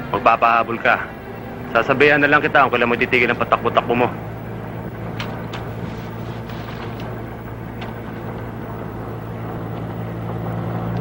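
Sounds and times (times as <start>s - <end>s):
vehicle engine drone: 0.0s - 11.0s.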